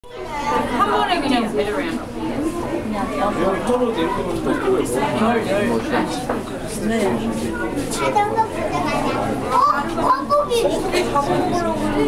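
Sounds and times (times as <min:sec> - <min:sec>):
children chattering: 0:00.1 - 0:12.0.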